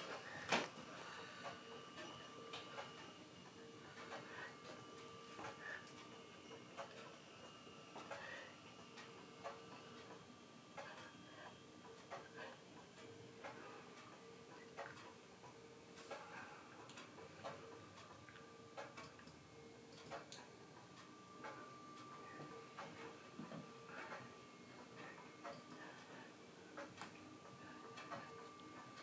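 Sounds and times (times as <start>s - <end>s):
faint hum: 0.0s - 29.0s.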